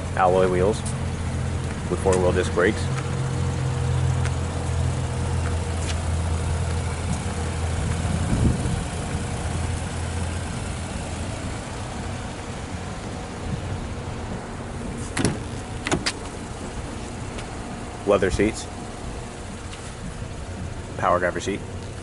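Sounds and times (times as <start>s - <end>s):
outdoor background noise: 0.0s - 22.0s
vehicle engine idling: 0.0s - 22.0s.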